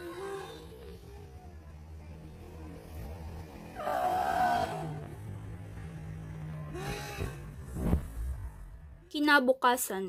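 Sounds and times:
droning film score: 0.0 - 9.1.

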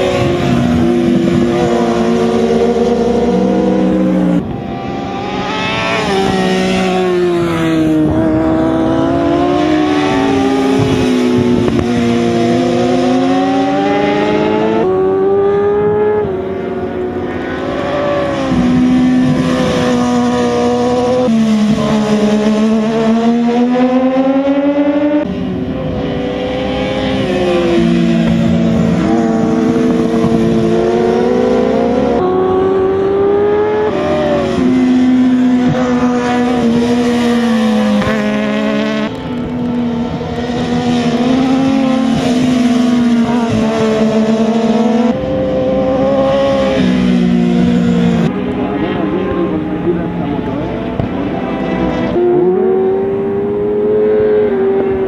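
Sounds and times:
racing motorcycle engines revving: 0.0 - 55.0.

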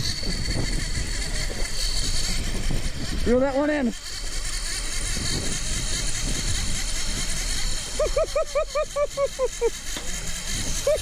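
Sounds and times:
outboard motors running: 0.0 - 11.0.

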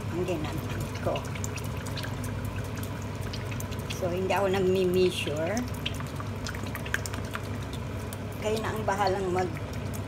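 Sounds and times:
meat sizzling in sugar: 0.0 - 10.0
small crackles: 0.6 - 10.0.

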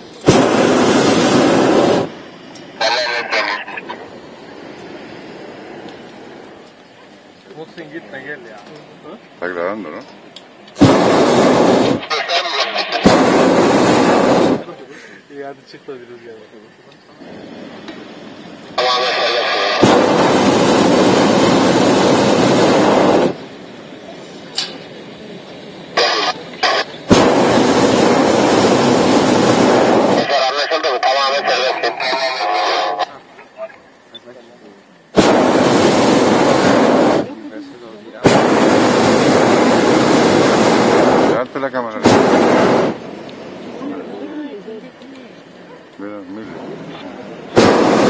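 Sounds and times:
propane burner blasts: 0.0 - 48.0.

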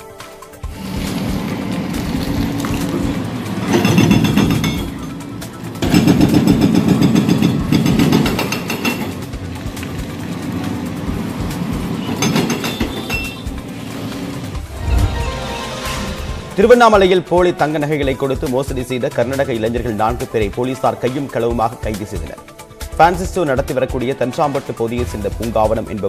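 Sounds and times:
excavator engine running: 0.7 - 8.7
rapid hammering on steel: 3.7 - 5.1, 5.8 - 9.3, 12.1 - 13.6.

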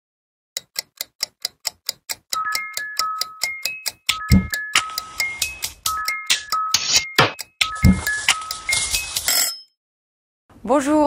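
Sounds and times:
clock-like ticking: 0.6 - 9.6
bell-like chime melody: 2.4 - 9.8.

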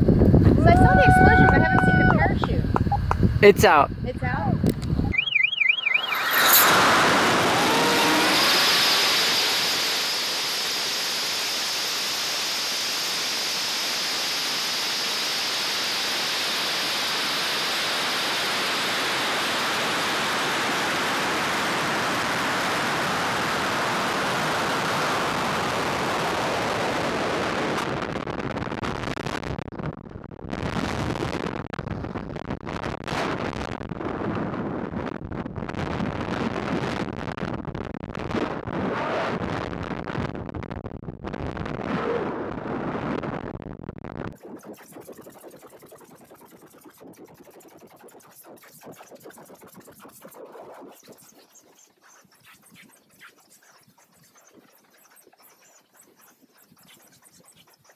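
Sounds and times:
wind buffeting microphone: 0.0 - 5.2
rocket rushing hiss: 5.8 - 21.5.

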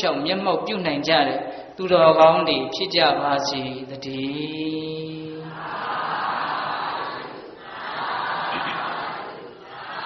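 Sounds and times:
voices chanting together: 5.1 - 10.0.

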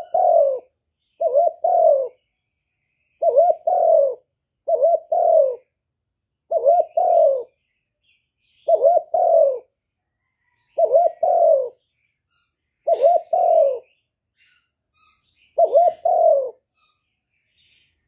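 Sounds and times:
dove cooing: 0.0 - 2.2, 3.2 - 5.8, 6.4 - 7.6, 8.6 - 9.8, 10.4 - 11.8, 12.8 - 14.0, 15.6 - 16.7.

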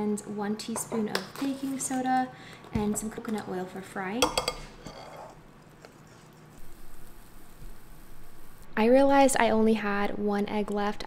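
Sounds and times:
batter sizzling in oil: 6.5 - 8.6.

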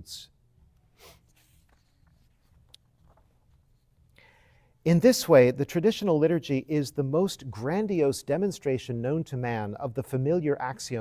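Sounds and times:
page turning: 1.3 - 3.8
paper sheets rustling: 1.3 - 3.8.

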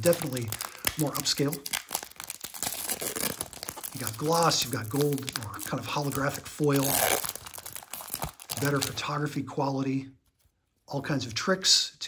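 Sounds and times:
foil wrapper tearing and crinkling: 0.0 - 9.0.

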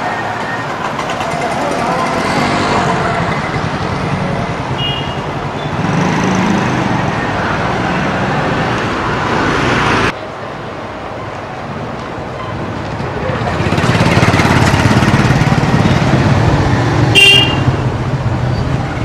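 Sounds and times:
motorcycles and scooters passing: 0.0 - 10.2, 12.7 - 19.0
road noise: 0.0 - 19.0.

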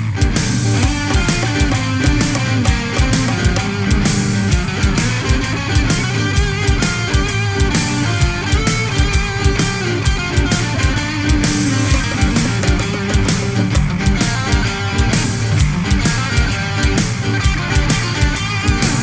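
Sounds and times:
heavy metal music: 0.0 - 19.0.

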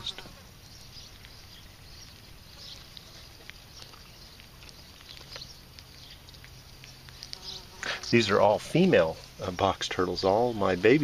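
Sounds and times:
flies buzzing: 0.0 - 9.0.

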